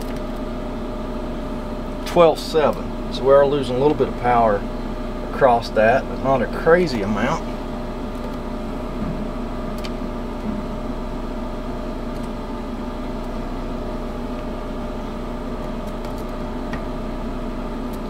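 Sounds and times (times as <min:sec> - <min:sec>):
machinery humming: 0:00.0 - 0:18.0.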